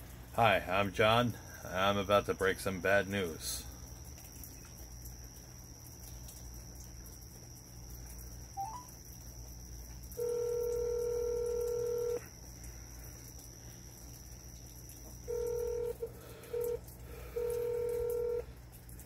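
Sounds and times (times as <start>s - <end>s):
phone ringback tone: 8.6s - 8.9s, 10.2s - 12.2s, 15.3s - 18.5s.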